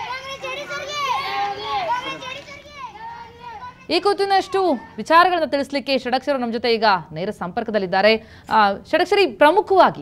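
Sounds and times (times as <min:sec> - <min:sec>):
children calling out: 0:00.0 - 0:05.1.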